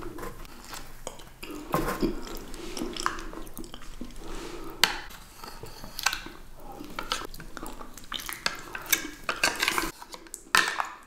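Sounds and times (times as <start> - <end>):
wet mouth eating sounds: 0.0 - 5.1, 5.8 - 10.5
spoons scraping plastic cups: 0.0 - 11.0.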